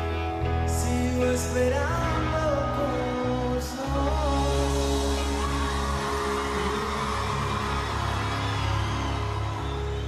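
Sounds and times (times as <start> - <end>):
live rock band music: 0.0 - 10.0.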